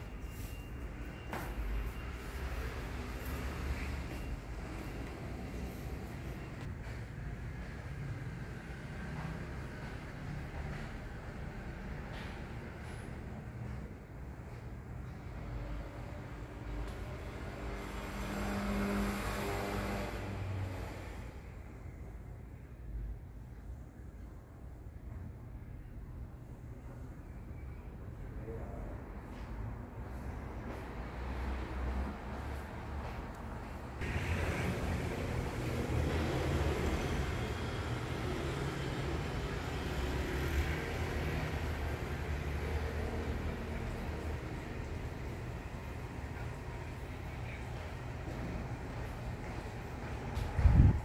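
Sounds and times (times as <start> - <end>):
motor vehicle passing by: 15.4 - 21.5, 30.1 - 51.0.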